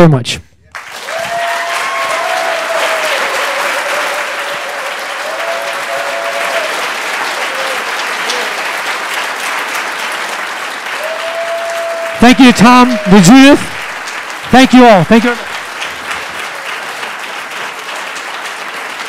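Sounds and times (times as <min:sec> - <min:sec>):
audience applauding: 0:00.7 - 0:19.0.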